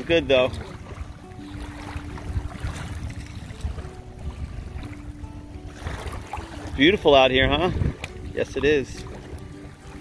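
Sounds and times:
faint music of held notes: 0.0s - 10.0s
wind rumbling on microphone: 0.0s - 10.0s.

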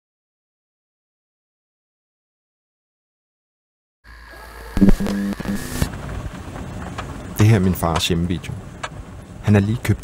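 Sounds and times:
steady high whine: 4.1s - 6.0s
tape hiss and hum: 4.1s - 9.9s
loud pitched tone: 4.2s - 5.9s.

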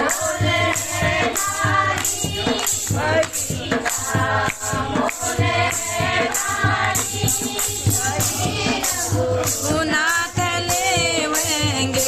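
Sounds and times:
hand drum beating: 0.0s - 12.0s
jingling metal percussion: 0.0s - 12.0s
women singing in unison: 0.0s - 12.0s.

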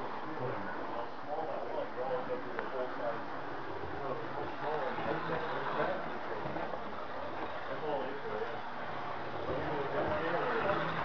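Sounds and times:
steady low background noise: 0.0s - 11.0s
people talking indistinctly: 0.3s - 11.0s.

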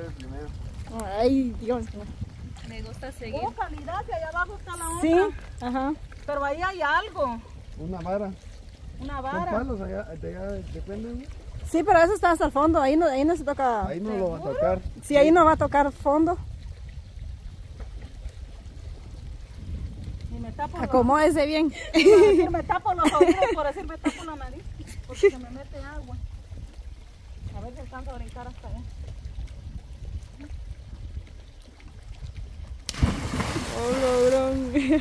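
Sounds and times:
lake water lapping: 0.0s - 35.0s
wind rumbling on microphone: 0.0s - 35.0s
person laughing: 21.8s - 24.2s, 34.4s - 35.0s
loud splash into water: 32.8s - 35.0s.

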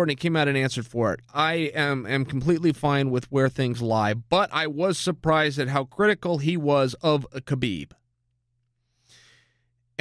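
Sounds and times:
man's soft breath: 8.8s - 9.9s.

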